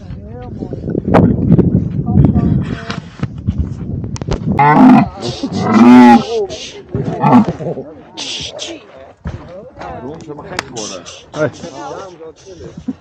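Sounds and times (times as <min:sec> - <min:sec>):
camel groaning: 0:04.6 - 0:07.9.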